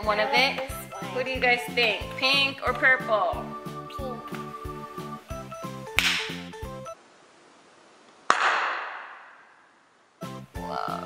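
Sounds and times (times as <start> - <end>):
background music with steady beat: 0.0 - 7.0, 10.2 - 11.0
sharp whip-like crack: 6.0 - 6.4, 8.3 - 9.6.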